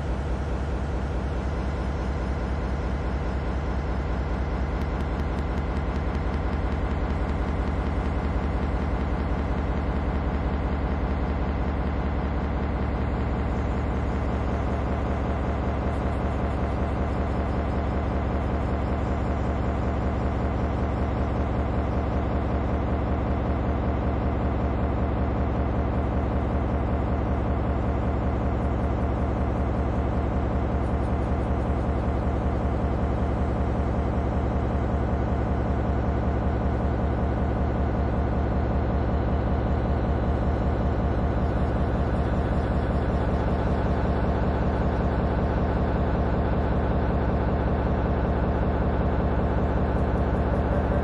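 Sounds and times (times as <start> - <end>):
low pulsing mechanical drone: 0.0 - 51.0.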